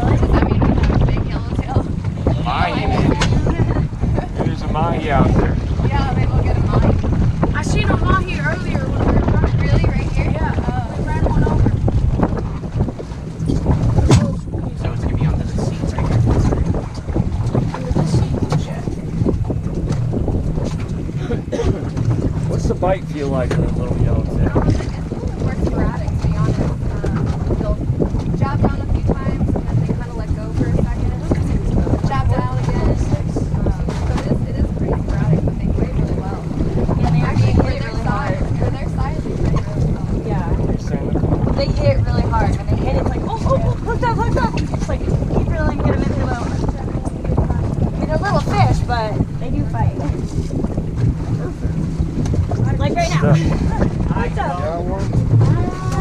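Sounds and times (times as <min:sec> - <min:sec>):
faint voices: 0:00.0 - 0:11.9, 0:21.1 - 0:56.0
wind buffeting microphone: 0:00.0 - 0:56.0.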